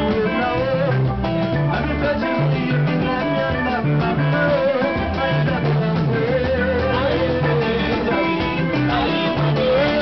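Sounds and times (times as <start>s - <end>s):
live band with electric guitar: 0.0s - 10.0s
repeating bass line: 0.0s - 10.0s.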